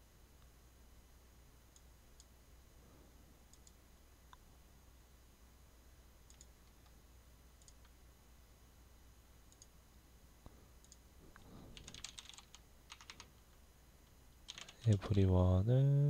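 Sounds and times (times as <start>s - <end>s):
faint mouse clicks: 3.5s - 4.4s, 6.2s - 7.0s, 7.6s - 8.0s, 9.5s - 9.8s, 10.4s - 12.6s
computer keyboard typing: 10.9s - 13.4s, 14.4s - 15.3s.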